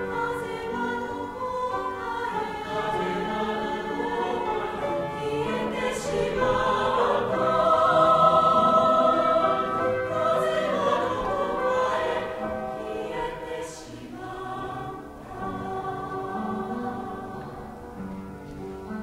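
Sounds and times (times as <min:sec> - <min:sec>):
mixed choir singing: 0:00.0 - 0:18.1.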